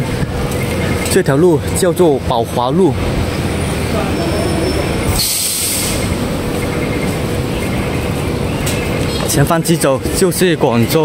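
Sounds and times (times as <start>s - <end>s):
passing vehicles roar: 0.0s - 11.0s
short high hiss: 5.2s - 6.2s.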